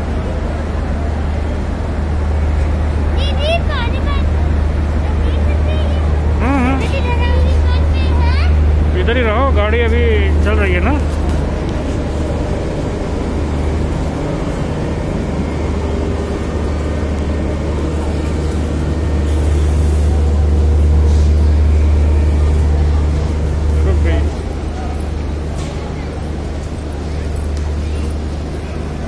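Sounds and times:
faint voices: 0:00.0 - 0:29.0
train air conditioning hum: 0:00.0 - 0:29.0.

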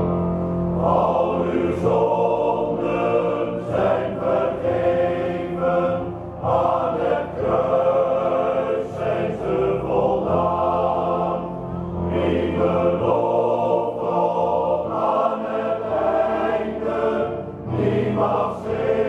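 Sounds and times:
male choir singing in harmony: 0:00.0 - 0:19.0.

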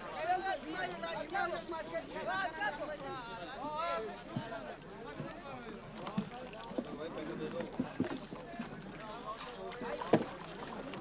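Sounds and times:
wooden boats knocking: 0:06.0 - 0:08.8, 0:09.7 - 0:11.0.

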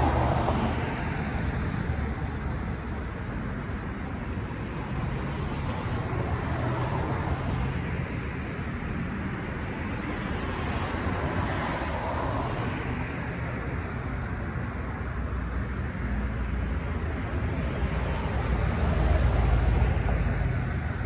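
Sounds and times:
rumble of passing cars: 0:00.0 - 0:21.0.

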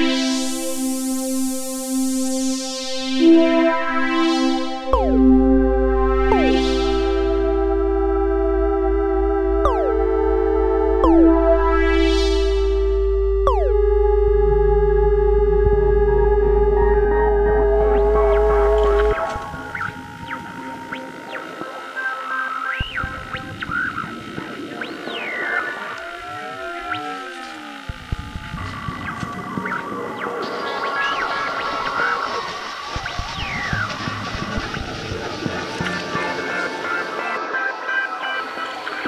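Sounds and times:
analog synthesizer electronic music: 0:00.0 - 0:39.0.

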